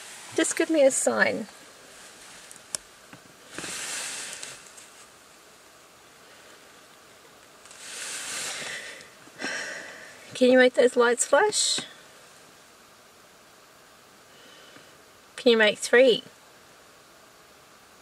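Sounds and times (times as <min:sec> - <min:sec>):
person breathing out: 0:07.8 - 0:10.3.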